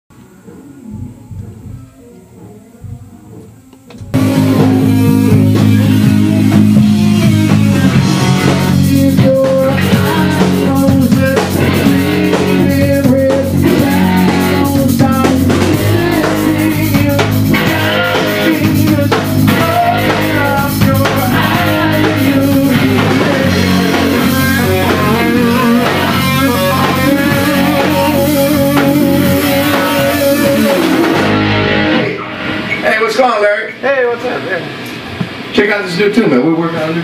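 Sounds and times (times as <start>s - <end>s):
drum kit: 0.1s - 33.3s
electric guitar: 0.2s - 35.6s
bass guitar: 3.5s - 33.1s.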